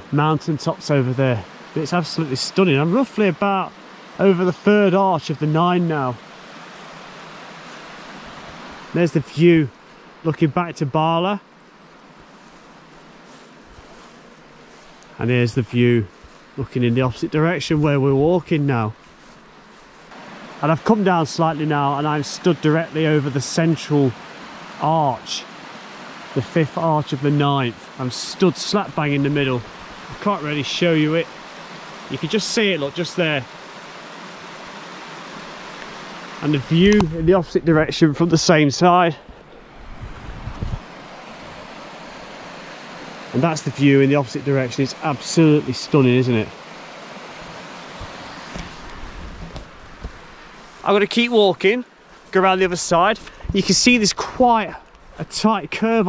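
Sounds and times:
steady outdoor hiss: 0.0 - 56.0
wind rushing: 39.2 - 42.2.

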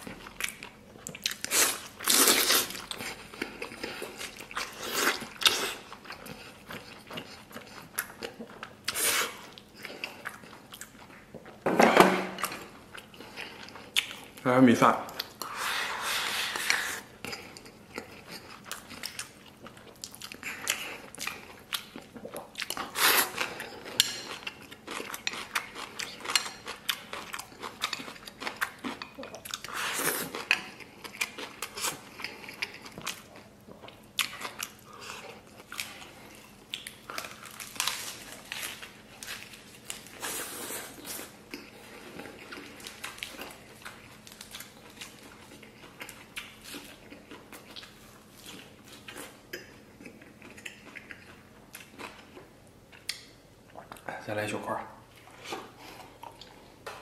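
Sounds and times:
person chewing: 0.0 - 11.6, 12.2 - 14.4, 15.1 - 54.1, 55.1 - 57.0.

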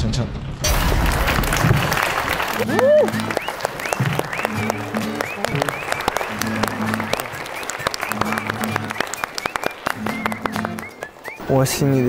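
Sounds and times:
group clapping rapidly: 0.7 - 12.0
people whooping: 0.8 - 12.0
background music: 1.8 - 12.0.

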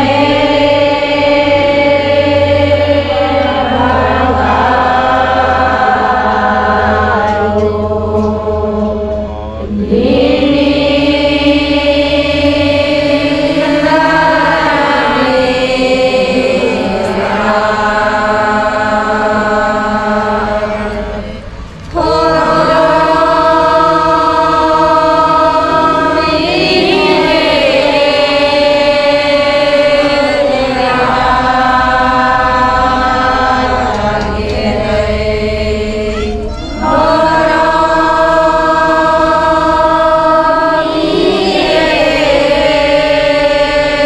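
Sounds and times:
women chanting a prayer: 0.0 - 44.0.

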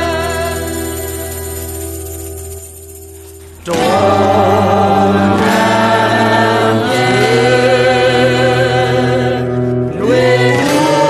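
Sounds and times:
person singing with vibrato: 0.0 - 2.6, 3.4 - 11.0.

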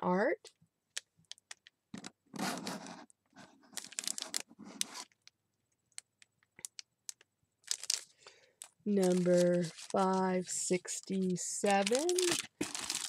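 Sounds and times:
plastic packaging crinkling: 3.6 - 5.3, 5.9 - 13.0.

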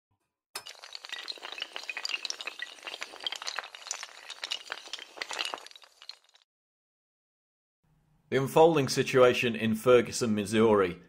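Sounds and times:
tiles toppling in a chain: 0.6 - 6.4.

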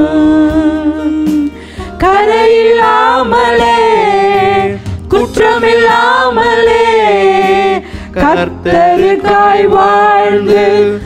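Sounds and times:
woman singing into a microphone: 0.0 - 11.0.

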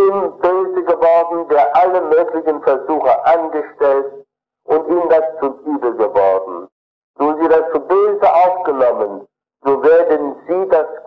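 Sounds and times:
man lecturing: 0.0 - 11.0.

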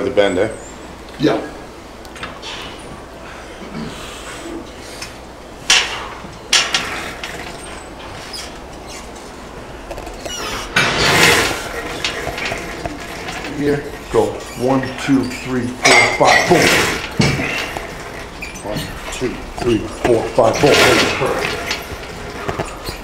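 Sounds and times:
weight machine chain clanking: 5.7 - 8.9, 10.3 - 23.0.

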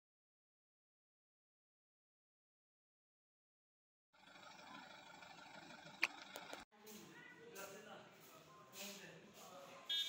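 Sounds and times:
faint outdoor background noise: 4.2 - 10.0.

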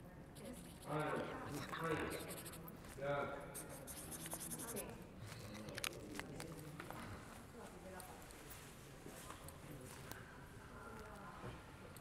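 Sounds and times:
marker scratching on cloth: 0.3 - 2.8, 3.5 - 5.0
person speaking: 0.4 - 2.7, 3.4 - 4.9.

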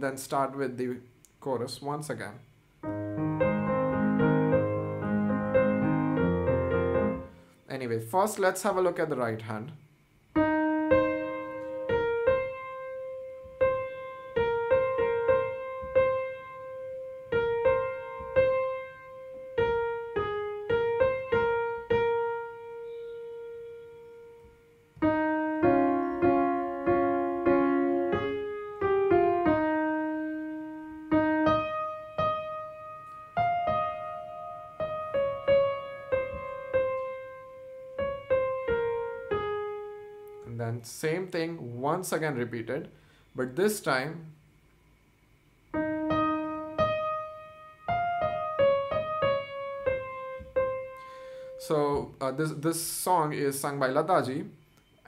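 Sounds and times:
slow piano melody: 2.8 - 7.7, 10.3 - 40.6, 45.2 - 52.6
piano chords: 2.8 - 9.1, 10.3 - 42.5, 45.6 - 55.0.

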